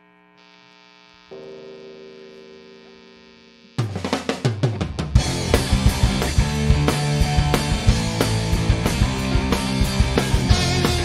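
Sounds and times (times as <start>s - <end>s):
amplifier hum: 0.0s - 11.0s
electric guitar chord ringing: 1.2s - 4.2s, 5.2s - 11.0s
pop punk band playing: 3.8s - 11.0s.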